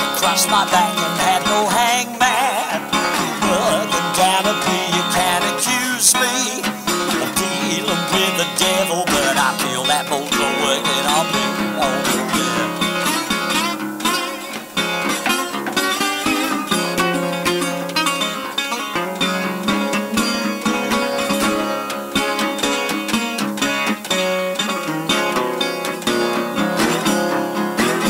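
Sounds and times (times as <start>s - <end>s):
resonator guitar playing: 0.0s - 28.0s.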